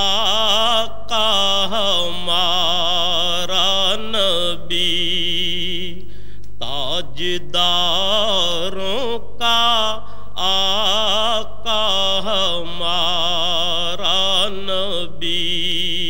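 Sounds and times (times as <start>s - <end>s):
solo voice singing devotional poem: 0.0s - 16.0s.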